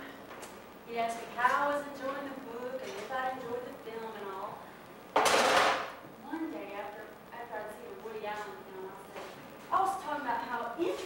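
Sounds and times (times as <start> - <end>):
woman speaking: 0.9 - 4.6, 6.2 - 11.0.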